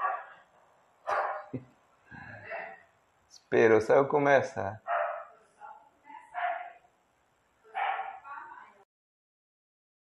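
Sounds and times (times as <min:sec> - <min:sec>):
dog barking: 0:00.0 - 0:00.4, 0:01.1 - 0:01.6, 0:04.8 - 0:05.4, 0:06.3 - 0:06.8, 0:07.7 - 0:08.2.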